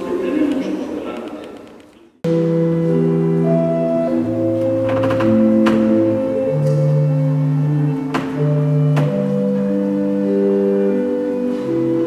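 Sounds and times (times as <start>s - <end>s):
pipe organ chord: 2.3s - 12.0s.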